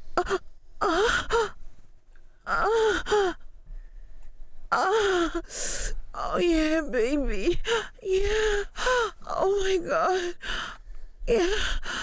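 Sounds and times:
woman moaning and gasping: 0.2s - 1.6s, 2.5s - 3.4s, 4.7s - 6.4s, 7.4s - 12.0s.

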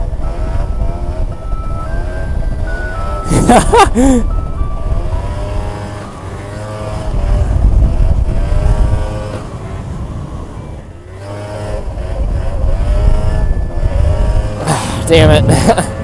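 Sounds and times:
scooter engine revving: 0.0s - 16.0s
wind rumbling on microphone: 0.0s - 16.0s.

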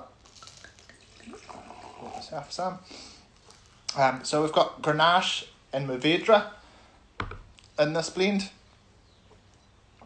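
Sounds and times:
wine pouring into a glass: 0.2s - 2.5s.

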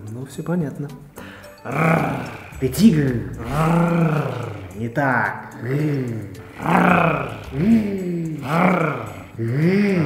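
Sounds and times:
men imitating tiger roars: 1.6s - 10.0s.

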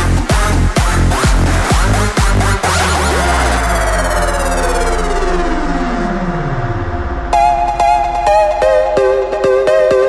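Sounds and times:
sustained synth bass: 0.0s - 10.0s
synth tone sliding down: 2.6s - 10.0s.

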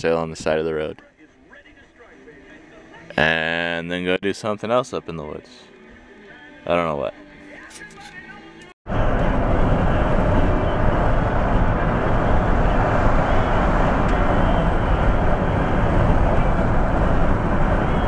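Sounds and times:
van driving on highway: 8.9s - 18.0s.

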